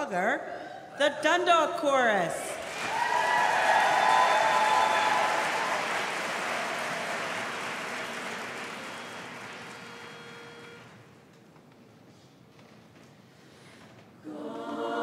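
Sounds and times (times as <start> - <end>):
audience applauding: 2.6 - 10.7.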